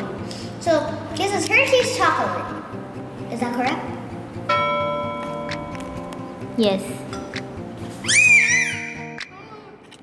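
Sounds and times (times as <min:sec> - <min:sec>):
bell chime ringing: 0:04.5 - 0:06.2.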